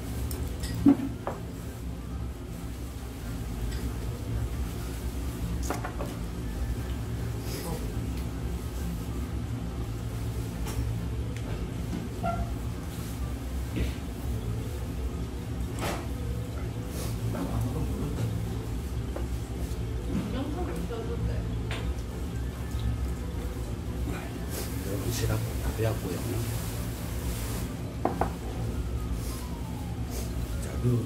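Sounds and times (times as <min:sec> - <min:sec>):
steady low hum: 0:00.0 - 0:31.0.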